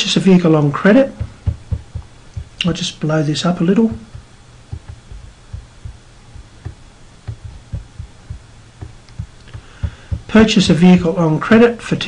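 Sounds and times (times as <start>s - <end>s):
steady low hum: 0.0s - 11.6s
soft low thumps: 0.7s - 11.2s.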